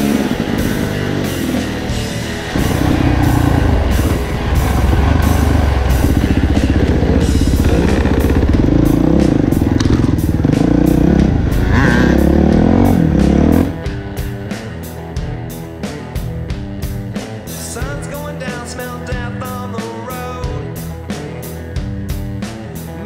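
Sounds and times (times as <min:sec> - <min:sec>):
dirt bike engine revving: 0:00.0 - 0:14.7
rock music: 0:00.0 - 0:23.0.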